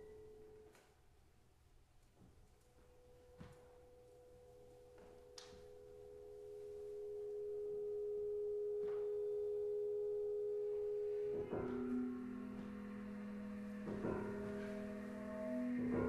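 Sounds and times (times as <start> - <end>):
chamber ensemble music: 4.0 - 16.0.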